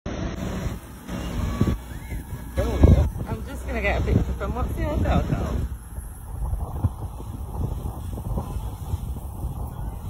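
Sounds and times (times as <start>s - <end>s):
low outdoor rumble: 0.1s - 10.0s.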